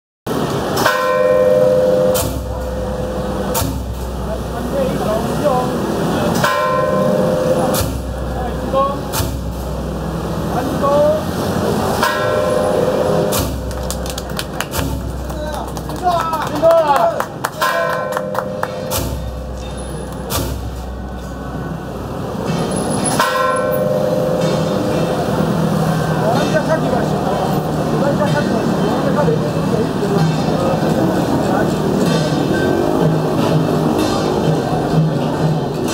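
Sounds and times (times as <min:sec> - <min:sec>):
metal percussion strikes ringing: 0:00.3 - 0:14.0, 0:17.5 - 0:29.2, 0:30.1 - 0:35.9
engine drone: 0:00.3 - 0:15.9
street and crowd noise: 0:00.3 - 0:35.9.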